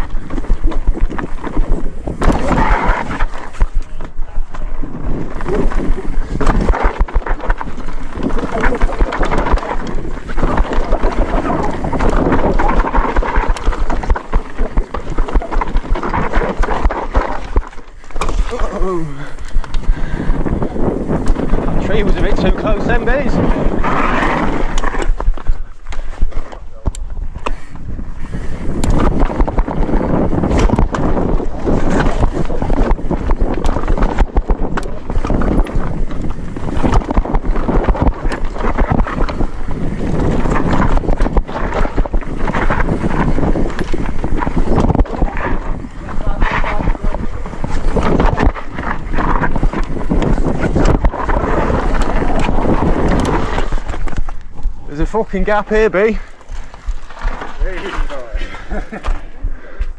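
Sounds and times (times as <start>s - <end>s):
tyres rolling over dirt and stones: 0.0s - 26.6s, 28.8s - 59.9s
bike knocking and rattling: 0.0s - 59.9s
wind buffeting microphone: 0.0s - 59.9s.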